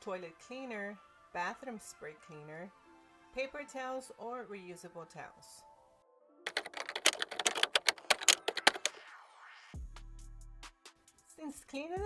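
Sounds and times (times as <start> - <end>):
keyboard key clicks: 6.5 - 9.0.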